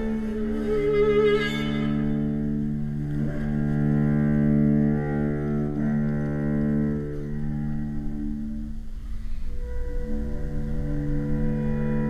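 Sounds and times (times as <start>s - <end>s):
string quartet sustained low notes: 0.0s - 12.0s.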